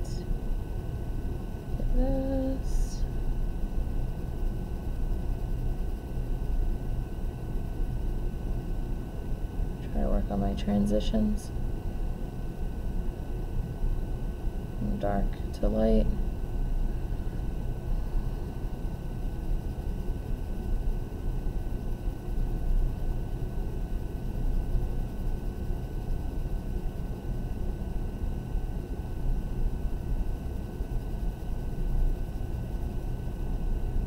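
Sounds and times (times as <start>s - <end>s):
low background rumble: 0.0s - 34.0s.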